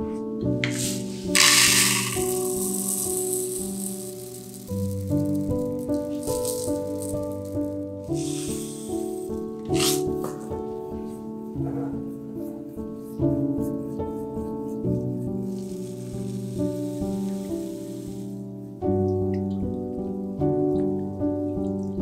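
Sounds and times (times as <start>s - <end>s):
soft piano music: 0.0s - 1.4s, 2.3s - 22.0s
crystals rattling into paper cup: 0.6s - 10.2s, 15.4s - 18.4s.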